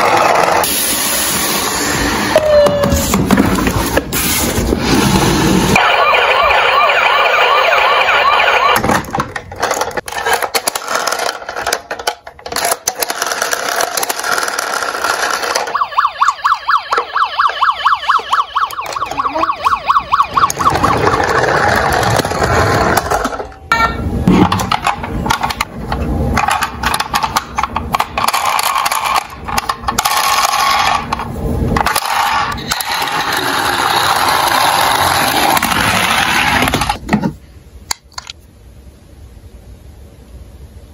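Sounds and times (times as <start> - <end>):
toy electronic sirens: 2.3 - 3.2, 5.8 - 9.0, 15.2 - 22.5.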